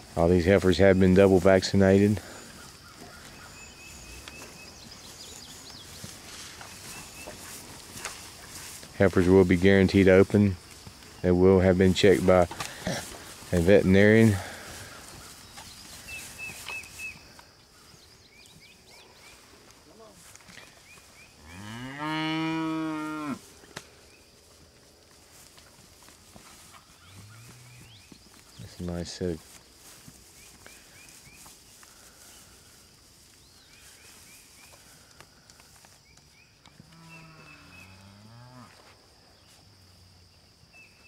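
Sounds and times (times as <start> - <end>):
cow mooing: 21.4 - 23.4.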